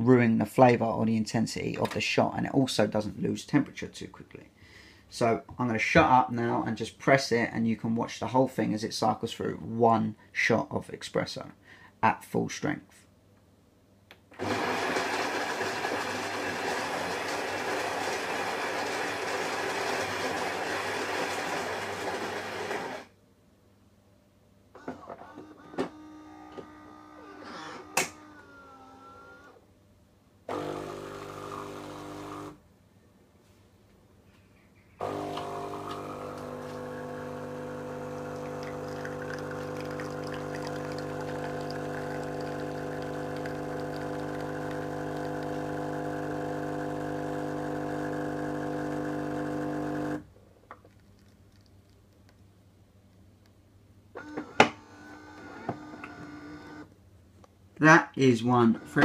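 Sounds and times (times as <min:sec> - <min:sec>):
coffee grinder grinding beans: 0:14.4 - 0:23.0, 0:30.5 - 0:32.6, 0:35.0 - 0:50.2
espresso pump humming: 0:14.4 - 0:23.0, 0:30.5 - 0:32.6, 0:35.0 - 0:50.2.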